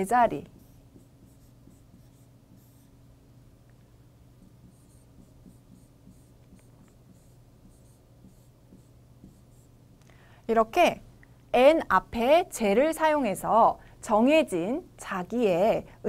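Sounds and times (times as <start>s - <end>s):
steady low hum: 0.0s - 16.0s
marker pen writing on board: 0.6s - 2.9s, 4.4s - 9.7s.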